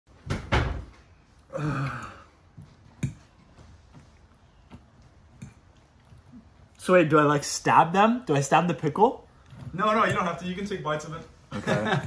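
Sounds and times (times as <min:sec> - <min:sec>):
man groaning: 0:01.5 - 0:02.3.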